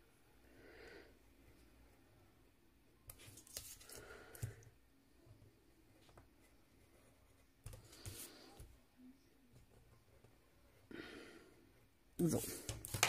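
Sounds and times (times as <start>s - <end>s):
soft breaths: 0.1s - 2.4s, 3.2s - 12.9s.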